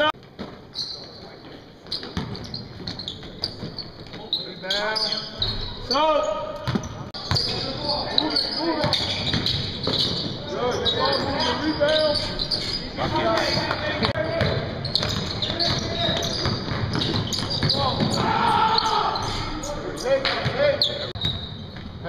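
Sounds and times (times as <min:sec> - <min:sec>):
shoe squeaks: 0:00.0 - 0:22.0
voices calling out: 0:00.8 - 0:21.4.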